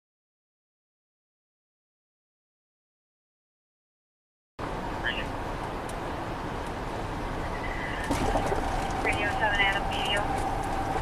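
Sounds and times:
road and engine noise in car: 4.6 - 11.0.

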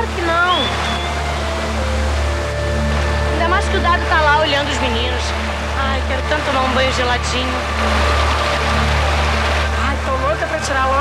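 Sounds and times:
stream water running over rocks: 0.0 - 11.0.

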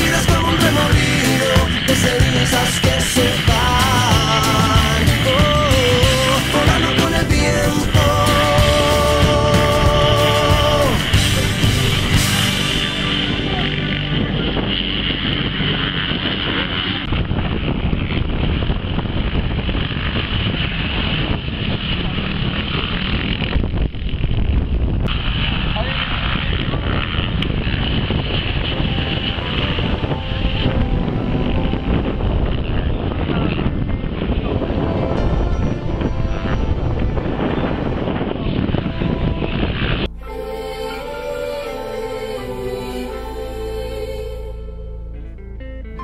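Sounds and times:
dirt bikes revving: 0.0 - 17.0
background voices: 0.0 - 17.1, 28.6 - 45.5
wind on microphone: 0.0 - 41.8.

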